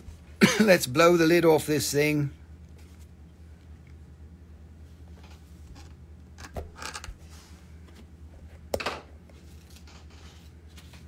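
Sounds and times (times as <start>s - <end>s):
soft rustles: 2.6s - 3.7s, 9.3s - 11.0s.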